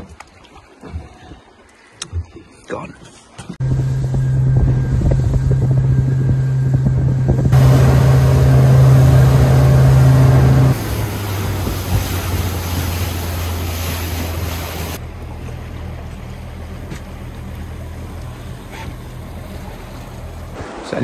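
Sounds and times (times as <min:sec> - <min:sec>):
boat engine humming: 0:03.6 - 0:20.6
hiss of wind and water: 0:07.5 - 0:21.0.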